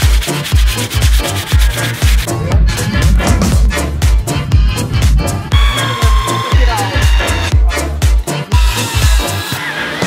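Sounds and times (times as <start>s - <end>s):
hand saw sawing wood: 0.0s - 2.3s
electronic dance music: 0.1s - 9.7s.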